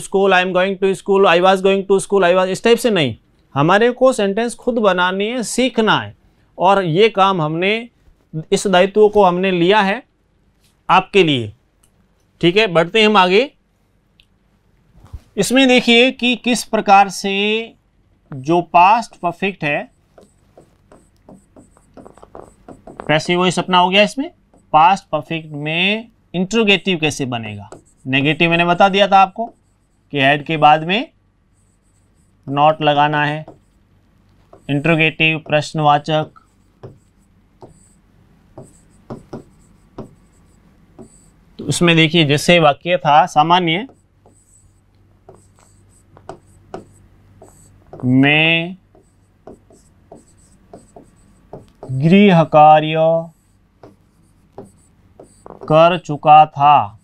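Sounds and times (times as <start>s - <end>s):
faint low hum: 0.0s - 57.0s
pen scratching and tapping on screen: 19.9s - 23.6s, 24.5s - 24.8s, 27.6s - 30.1s, 31.6s - 41.8s, 43.8s - 48.1s, 48.8s - 52.1s, 53.3s - 55.8s.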